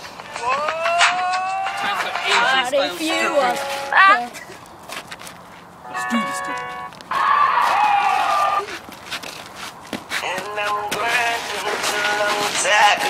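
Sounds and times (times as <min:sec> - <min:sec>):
young man yelling loudly: 0:00.5 - 0:04.3.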